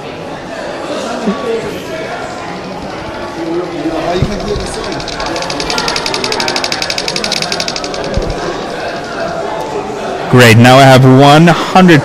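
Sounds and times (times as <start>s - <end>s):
rapid camera shutter clicks: 4.2s - 9.0s.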